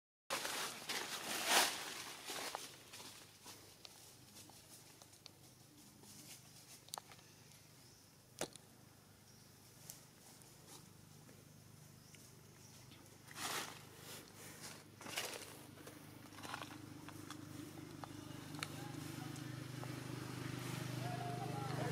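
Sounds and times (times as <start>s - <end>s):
rustling: 0.3s - 7.6s, 12.1s - 18.9s
faint outdoor background: 0.3s - 21.9s.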